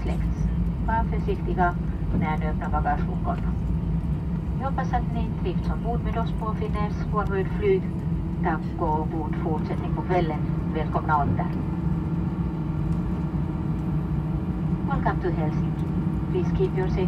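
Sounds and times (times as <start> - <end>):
cabin air hum: 0.0 - 17.0
idling jet engines rumbling: 0.0 - 17.0.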